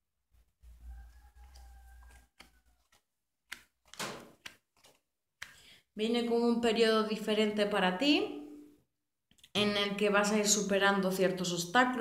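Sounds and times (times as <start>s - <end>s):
rooster crowing: 0.7s - 3.0s
cards swishing and tapping: 1.4s - 5.6s.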